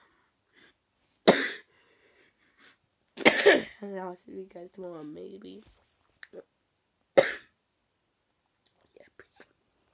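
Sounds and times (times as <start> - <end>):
boy coughing: 3.2 - 3.8, 7.2 - 7.5.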